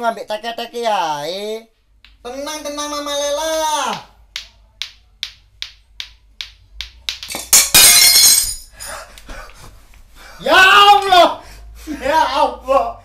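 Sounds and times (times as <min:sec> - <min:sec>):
plate smashing: 0:07.3 - 0:08.7.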